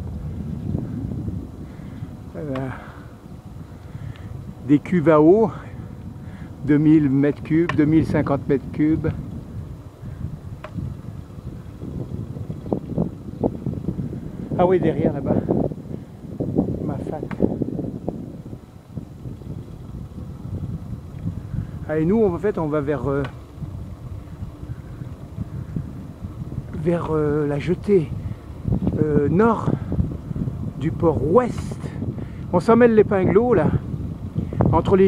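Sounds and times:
car road and engine rumble: 0:00.0 - 0:35.0
wind noise on microphone: 0:00.0 - 0:35.0.

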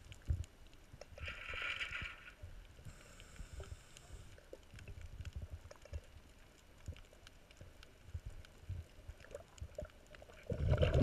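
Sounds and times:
underwater clicks and crackles: 0:00.0 - 0:11.0.

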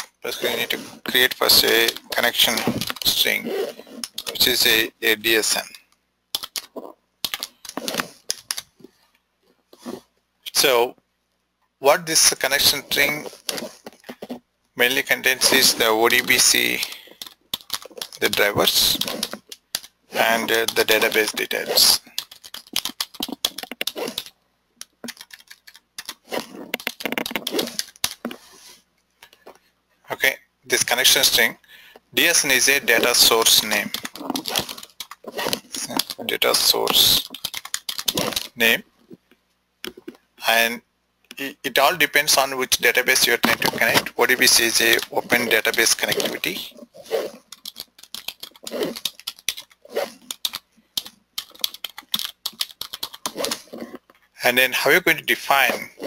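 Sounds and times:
computer keyboard keystrokes: 0:06.4 - 0:08.7, 0:16.8 - 0:19.9, 0:22.1 - 0:24.3, 0:25.0 - 0:26.2, 0:26.8 - 0:28.2, 0:37.2 - 0:38.5, 0:47.5 - 0:53.4.

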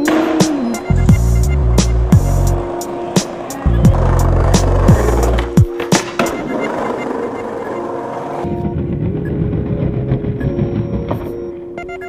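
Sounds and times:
skateboard wheels rolling on tiles: 0:01.9 - 0:11.4.

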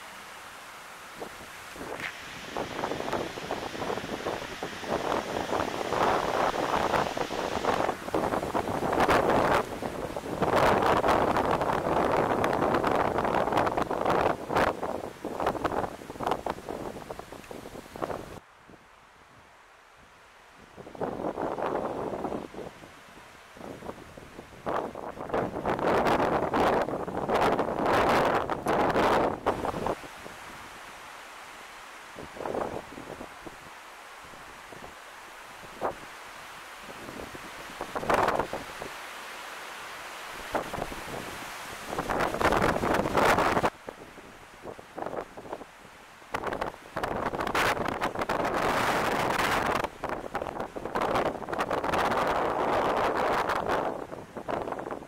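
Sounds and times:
leaves rustling: 0:00.0 - 0:55.0
gusty wind buffeting microphone: 0:01.1 - 0:18.8, 0:20.6 - 0:30.9, 0:32.1 - 0:33.7, 0:36.8 - 0:39.0, 0:40.4 - 0:45.7, 0:46.3 - 0:55.0.

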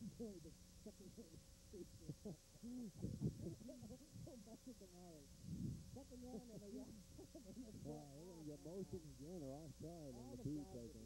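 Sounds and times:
man talking quietly: 0:00.0 - 0:11.0.

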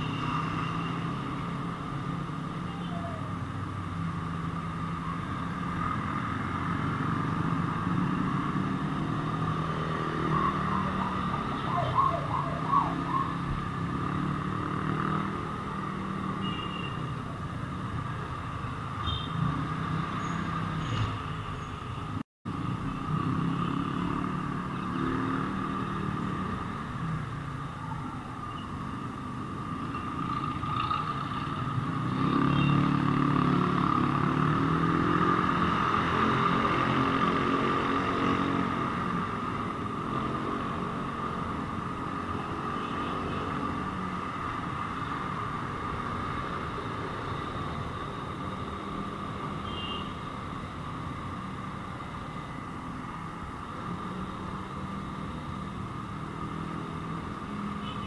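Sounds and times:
hum of traffic: 0:00.0 - 0:58.0.

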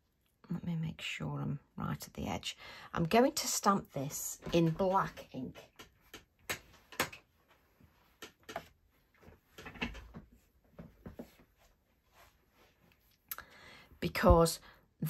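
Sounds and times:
soft rustle: 0:06.7 - 0:13.3.

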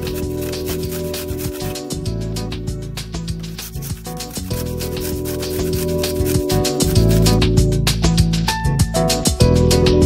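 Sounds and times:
garlic rasping on grater: 0:00.0 - 0:01.9, 0:03.4 - 0:07.4
background music: 0:00.0 - 0:10.0.

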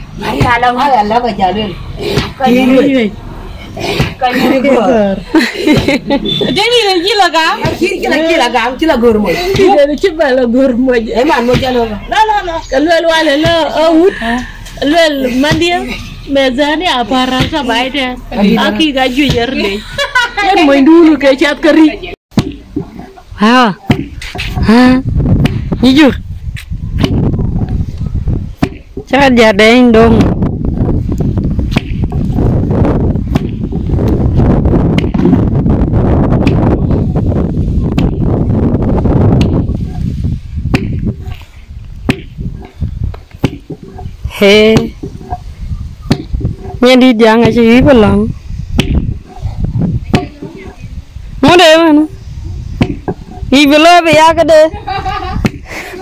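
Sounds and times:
wooden pestle pounding in mortar: 0:23.8 - 0:24.7, 0:28.6 - 0:29.4, 0:42.0 - 0:47.9, 0:48.8 - 0:49.4, 0:50.0 - 0:51.6, 0:52.8 - 0:54.4.

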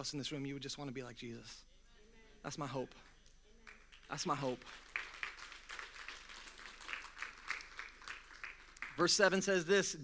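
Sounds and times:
faint scattered clapping: 0:03.0 - 0:09.4.

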